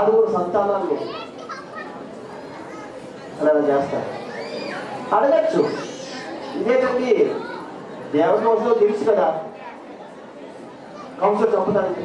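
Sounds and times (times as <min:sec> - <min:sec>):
murmur of children's voices: 0:00.0 - 0:12.0
children's high sliding calls: 0:04.2 - 0:06.6.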